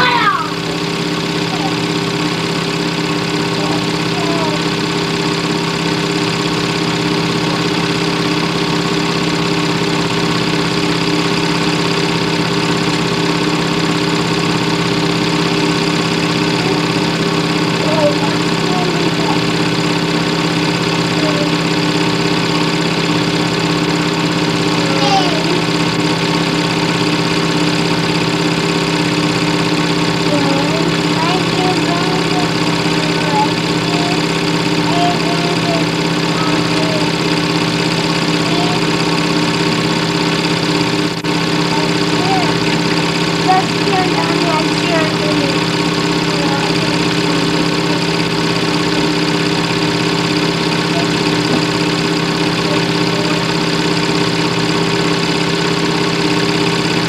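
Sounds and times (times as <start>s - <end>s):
faint voices: 0.0s - 0.7s, 3.4s - 4.8s, 16.4s - 19.8s, 24.6s - 25.9s, 30.2s - 37.2s, 41.6s - 48.2s, 50.8s - 51.8s
steady mechanical hum: 0.0s - 57.0s.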